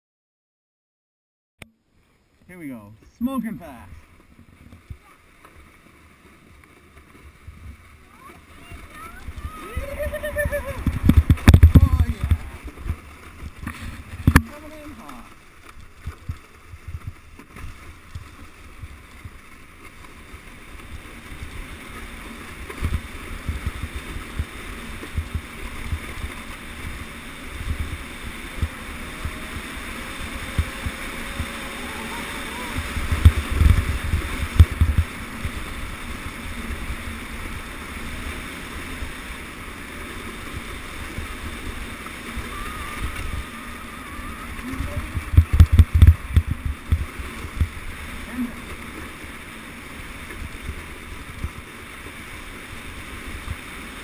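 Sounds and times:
sled scraping over snow: 0:02.0 - 0:54.0
low thumps and rumble: 0:08.9 - 0:14.5, 0:32.7 - 0:35.8, 0:44.5 - 0:47.9.

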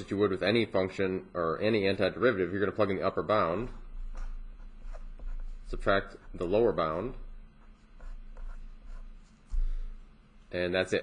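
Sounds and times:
pen scratching on paper: 0:04.0 - 0:09.4.

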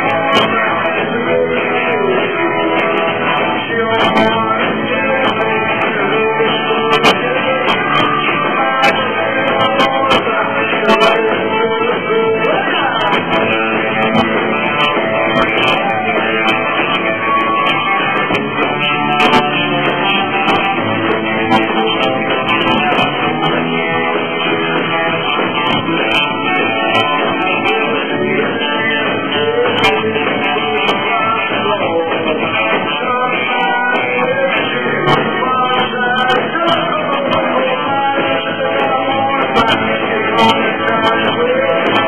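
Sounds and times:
electric guitar: 0:00.0 - 0:42.0
rockabilly band playing: 0:00.0 - 0:42.0.

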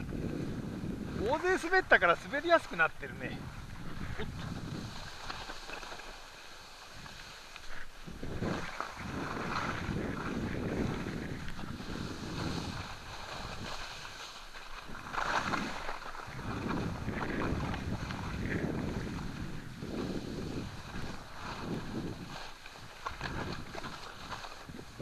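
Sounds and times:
wind rushing over microphone: 0:00.0 - 0:06.0, 0:06.8 - 0:25.0
skis scraping over snow: 0:00.0 - 0:25.0.

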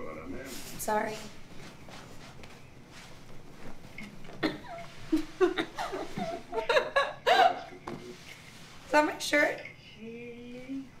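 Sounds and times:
woman speaking: 0:00.8 - 0:01.3, 0:08.9 - 0:11.0
woman laughing breathily: 0:04.4 - 0:07.7.

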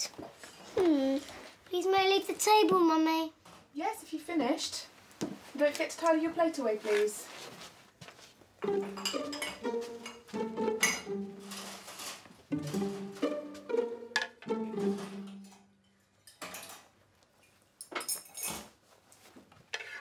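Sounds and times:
plate clinking and clattering: 0:08.6 - 0:13.5, 0:14.1 - 0:16.9
pizzicato string music: 0:08.6 - 0:15.8.

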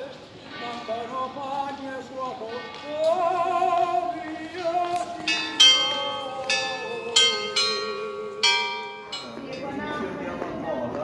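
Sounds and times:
bells ringing: 0:04.8 - 0:10.3.

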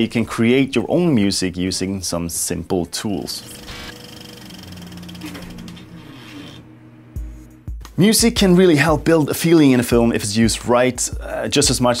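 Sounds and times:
film projector clatter: 0:03.5 - 0:05.8.

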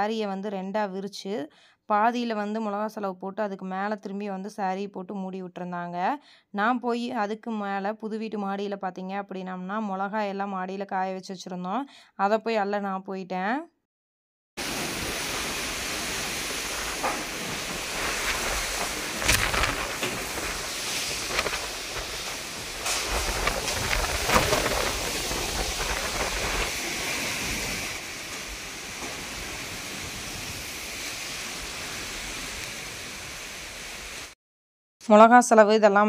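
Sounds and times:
gusty wind through trees: 0:14.6 - 0:34.4.

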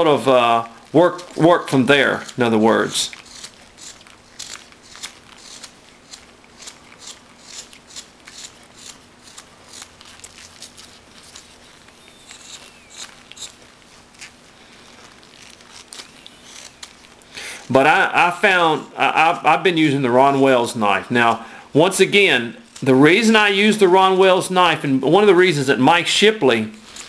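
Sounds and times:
knife cutting wood chips: 0:00.0 - 0:17.9.

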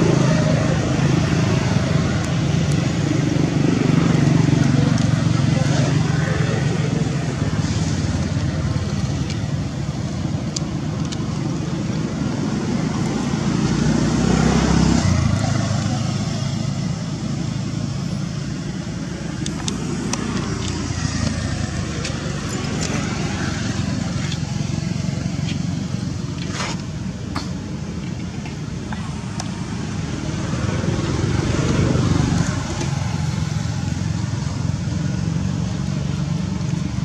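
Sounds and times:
road traffic rumble: 0:00.0 - 0:37.0
faint voices: 0:03.5 - 0:09.9.

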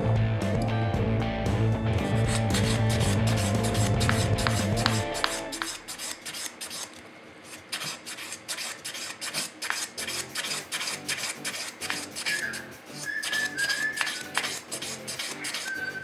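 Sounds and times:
abrasive paper scratching metal: 0:02.0 - 0:16.0.

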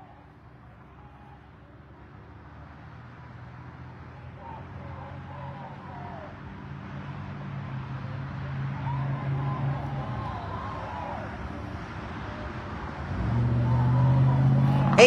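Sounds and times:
vehicle engines humming: 0:00.0 - 0:15.0.

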